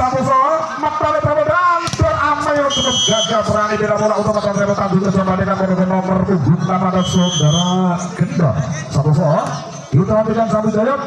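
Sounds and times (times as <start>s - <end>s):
referee's whistle blast: 2.6s - 3.5s, 7.0s - 7.9s.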